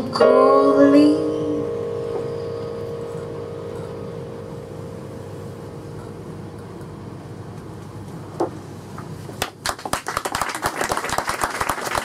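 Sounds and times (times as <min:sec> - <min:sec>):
piano chord: 0:00.0 - 0:07.7.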